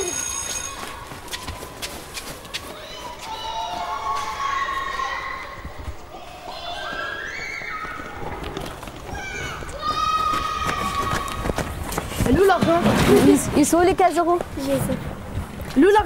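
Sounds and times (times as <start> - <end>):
high drawn-out cries: 0.0 - 1.1
children shouting: 2.4 - 8.4, 9.0 - 11.7.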